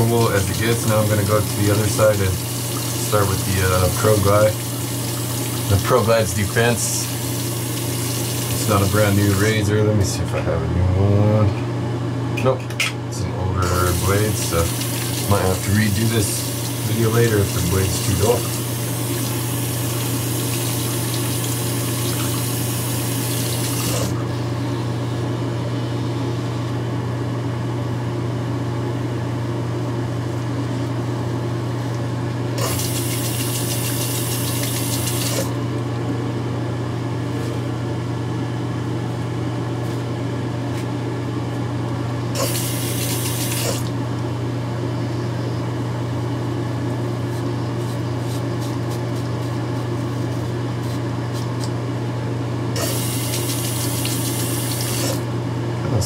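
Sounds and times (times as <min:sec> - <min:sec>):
tap running water: 0:00.0 - 0:09.4, 0:13.6 - 0:24.2, 0:32.6 - 0:35.5, 0:42.4 - 0:43.9, 0:52.8 - 0:55.2.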